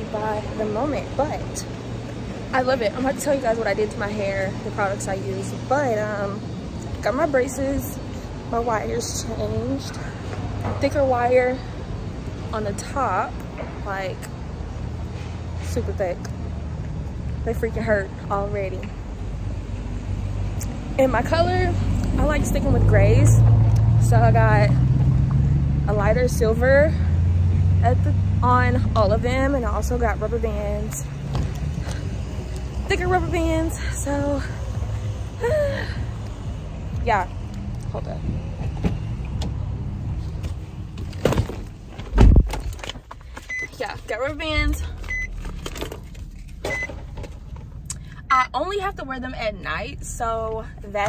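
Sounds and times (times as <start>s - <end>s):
woman's voice: 0.0s - 1.8s, 2.5s - 11.8s, 12.5s - 14.3s, 15.6s - 16.3s, 17.4s - 19.0s, 20.9s - 24.8s, 25.9s - 27.1s, 27.8s - 31.2s, 32.8s - 34.7s, 37.0s - 38.4s, 43.7s - 45.0s, 48.1s - 51.0s
low outdoor rumble: 0.0s - 51.0s
wind buffeting microphone: 42.1s - 42.8s
car warning chime beeps: 43.4s - 45.4s, 46.6s - 47.0s.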